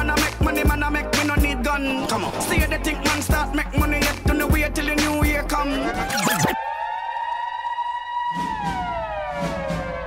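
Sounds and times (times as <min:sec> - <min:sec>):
bass and drum beat: 0:00.0 - 0:01.8, 0:02.5 - 0:05.8
siren sound effect: 0:05.8 - 0:10.0.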